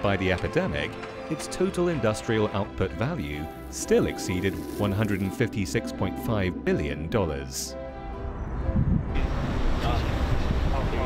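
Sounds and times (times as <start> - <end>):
person speaking: 3.2 - 7.8.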